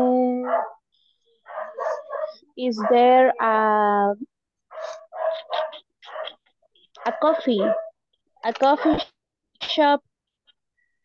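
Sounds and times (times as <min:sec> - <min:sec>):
dog barking: 0:00.4 - 0:03.4, 0:04.7 - 0:06.4, 0:07.0 - 0:08.0.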